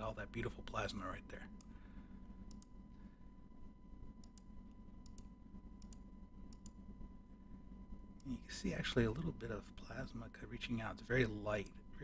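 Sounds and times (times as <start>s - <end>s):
low hum: 0.0s - 12.0s
computer mouse clicking: 2.5s - 2.7s, 4.2s - 6.8s.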